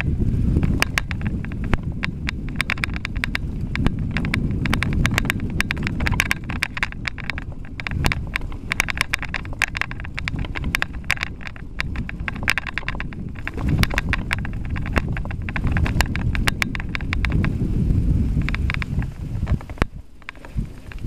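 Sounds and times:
bike clicking and rattling: 0:00.0 - 0:21.0
tyres rumbling on dirt: 0:00.0 - 0:21.0
wind on microphone: 0:00.0 - 0:21.0.

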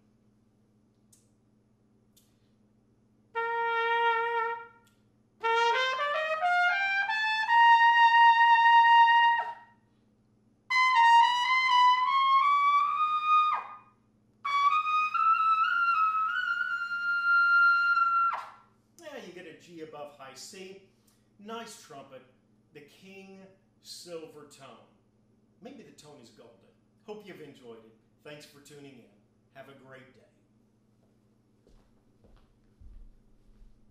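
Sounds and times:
trumpet phrases climbing: 0:03.3 - 0:04.8, 0:05.4 - 0:09.7, 0:10.7 - 0:13.8.

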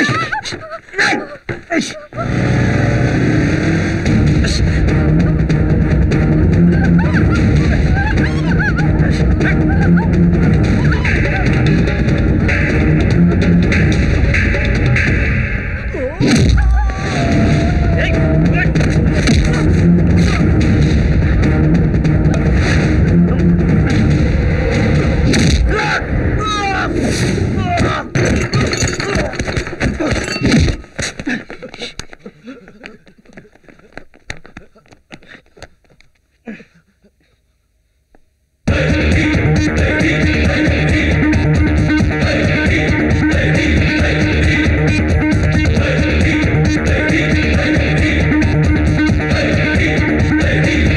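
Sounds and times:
action film music: 0:02.2 - 0:27.8, 0:38.7 - 0:50.9
loud guitar-driven music: 0:02.4 - 0:16.5, 0:17.1 - 0:25.7, 0:38.7 - 0:50.9
people shouting: 0:06.8 - 0:11.7, 0:15.9 - 0:20.5, 0:23.3 - 0:27.0.

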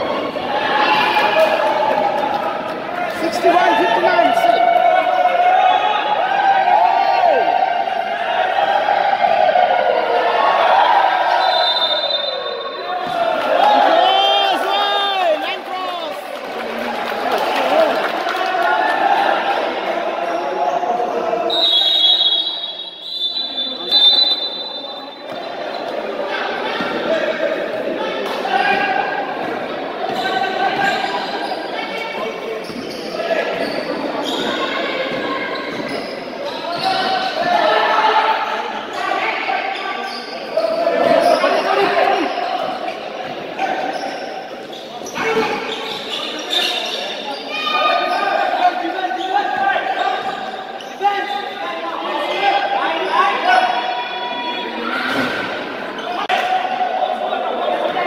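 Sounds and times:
people shouting: 0:03.2 - 0:16.1
high steady whistle: 0:11.4 - 0:12.8, 0:21.5 - 0:25.1
sneakers squeaking: 0:20.2 - 0:27.1, 0:28.6 - 0:56.5.

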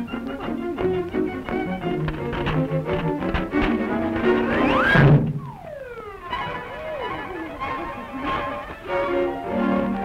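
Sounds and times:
cartoon band music with sliding notes: 0:00.0 - 0:10.0.

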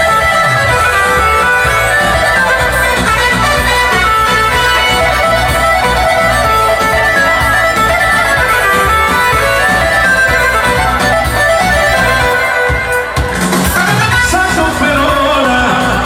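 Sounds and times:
steady bass beat: 0:00.0 - 0:13.7
keyboard lead: 0:00.0 - 0:16.0.

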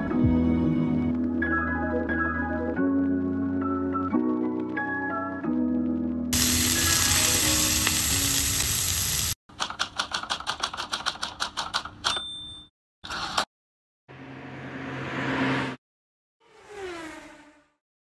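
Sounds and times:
background music: 0:00.0 - 0:08.4
food sizzling in frying pan: 0:06.4 - 0:09.4
short bursts of hiss: 0:06.4 - 0:09.4.

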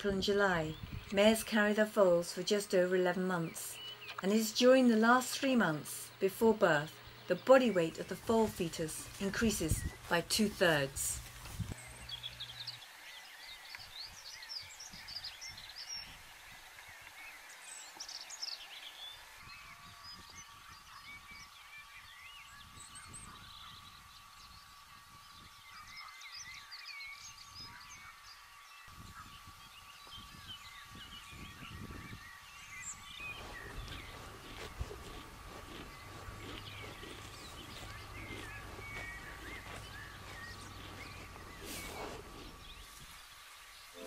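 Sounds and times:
birds chirping and trilling: 0:00.0 - 0:44.0.

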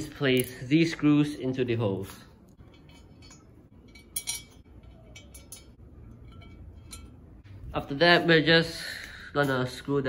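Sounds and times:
small metal screws clinking: 0:00.0 - 0:00.7, 0:02.5 - 0:07.4.

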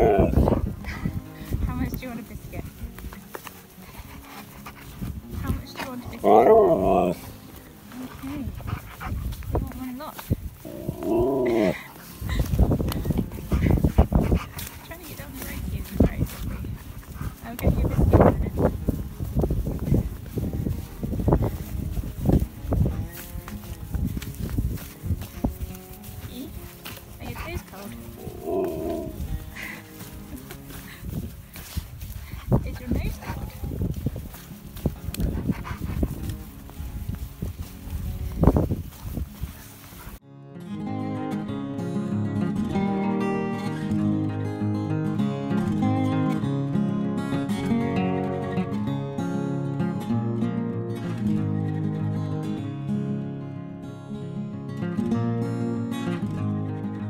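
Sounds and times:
soft music: 0:00.0 - 0:57.0
dog vocalizing: 0:10.6 - 0:11.9, 0:27.4 - 0:29.7.

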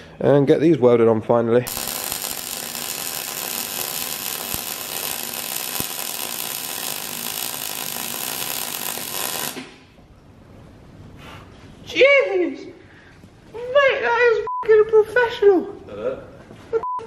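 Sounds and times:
welder arc buzzing: 0:01.7 - 0:10.0.

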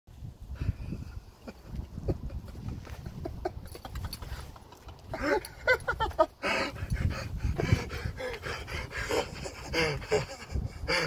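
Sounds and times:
man laughing: 0:01.4 - 0:06.8, 0:07.6 - 0:11.0.

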